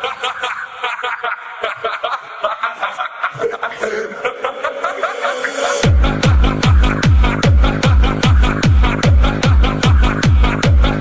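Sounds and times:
sampled laugh in hardstyle track: 0.0s - 11.0s.

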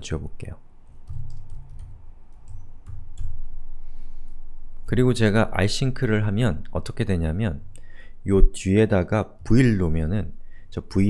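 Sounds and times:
low steady hum: 0.0s - 11.0s
keyboard typing: 0.9s - 3.4s.

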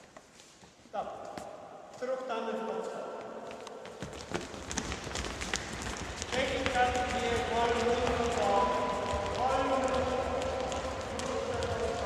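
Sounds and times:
children's footsteps on hall floor: 0.0s - 12.0s
person talking: 6.3s - 12.0s.

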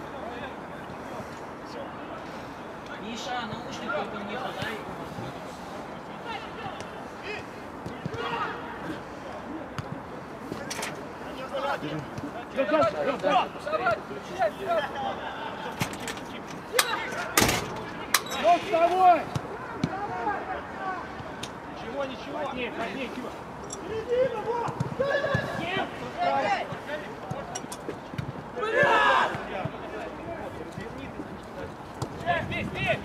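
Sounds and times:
players shouting: 6.2s - 9.1s, 28.5s - 30.3s.

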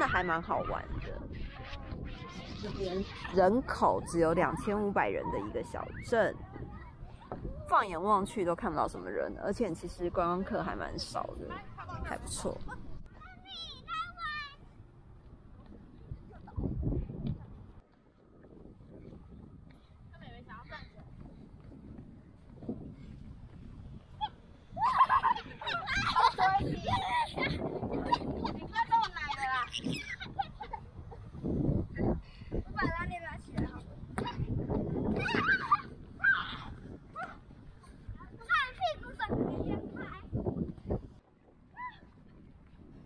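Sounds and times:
child's high-pitched squeal: 35.2s - 36.7s.

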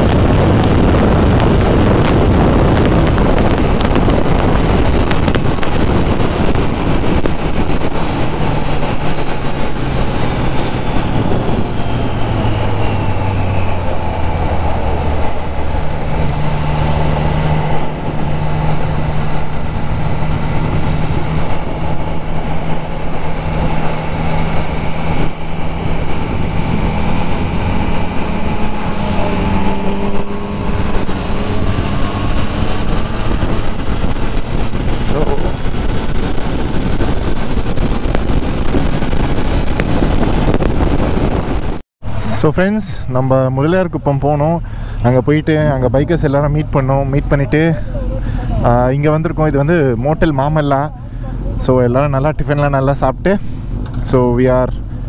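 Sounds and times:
motorcycle engine running: 0.0s - 41.8s
wind rushing over microphone: 0.0s - 55.0s.

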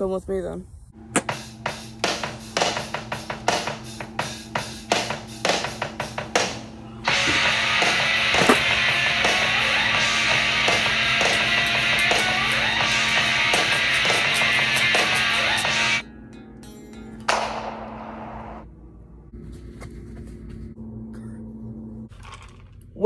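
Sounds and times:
rock band with electric guitar: 5.0s - 16.0s
drum hits: 17.3s - 18.6s.

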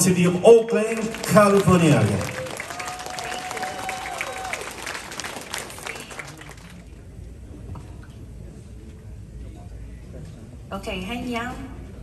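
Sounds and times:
audience applauding: 0.6s - 7.0s.

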